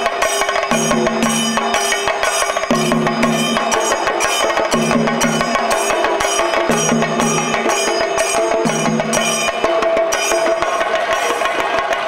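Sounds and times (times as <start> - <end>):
drums beaten fast with sticks: 0.0 - 12.0
bright ringing: 0.7 - 10.9.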